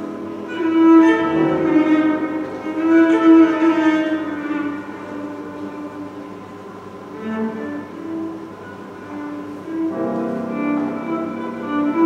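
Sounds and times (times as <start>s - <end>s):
piano: 0.0s - 12.0s
viola holding soft note: 0.0s - 12.0s.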